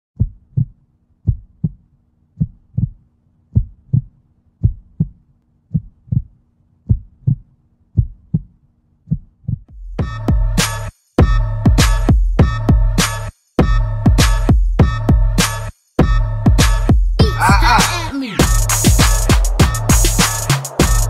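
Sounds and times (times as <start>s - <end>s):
heartbeat thumps: 0.2s - 10.5s, 11.2s - 13.0s, 13.6s - 15.3s, 18.4s - 21.0s.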